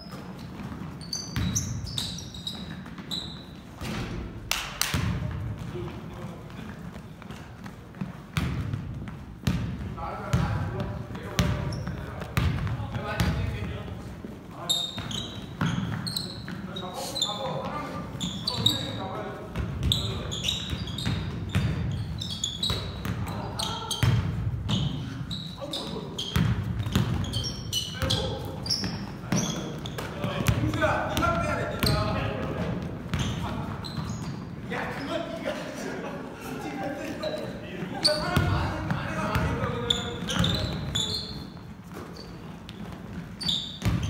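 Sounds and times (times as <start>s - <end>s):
sneakers squeaking: 0.0s - 44.0s
basketball dribbling thuds: 0.4s - 4.3s, 4.9s - 14.0s, 14.9s - 16.8s, 17.6s - 25.1s, 25.9s - 34.4s, 38.3s - 44.0s
players' voices: 5.1s - 8.9s, 9.6s - 42.8s.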